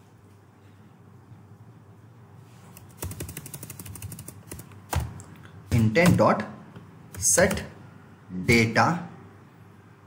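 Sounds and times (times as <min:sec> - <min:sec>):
computer keyboard typing: 0:02.7 - 0:05.3, 0:07.1 - 0:07.7.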